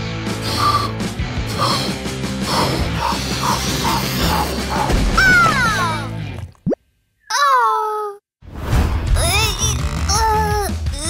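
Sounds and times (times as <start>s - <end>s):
background music: 0.0s - 6.6s, 8.7s - 11.0s
cartoon girl whimpering: 9.2s - 11.0s.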